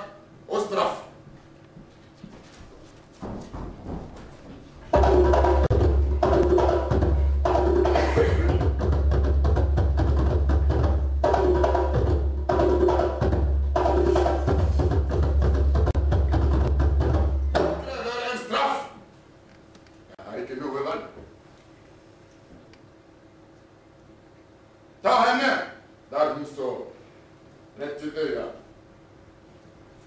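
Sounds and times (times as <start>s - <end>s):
knocking percussion phrase: 4.9s - 18.1s.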